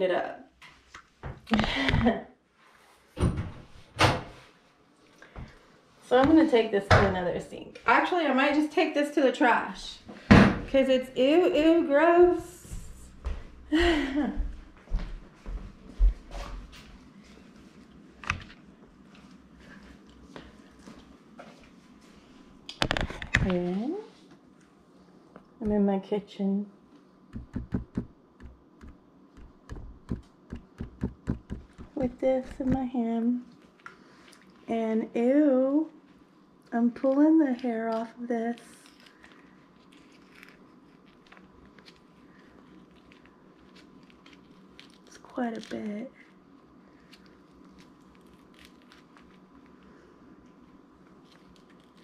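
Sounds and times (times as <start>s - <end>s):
low steady hum: 0.0s - 52.0s
footsteps on hardwood floor: 11.6s - 17.4s, 27.4s - 28.6s, 29.4s - 32.9s.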